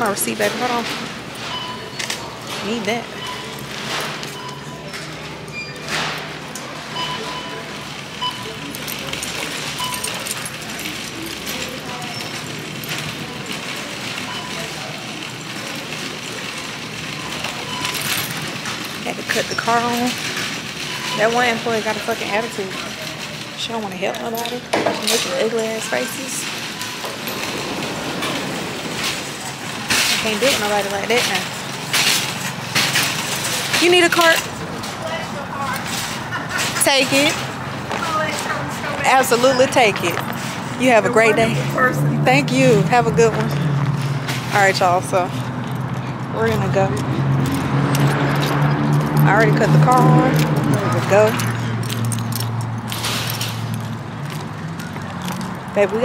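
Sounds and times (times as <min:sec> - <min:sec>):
chatter of shoppers: 0:00.0 - 0:56.0
supermarket rumbling noise: 0:00.0 - 0:56.0
short electronic beeps: 0:03.1 - 0:03.6.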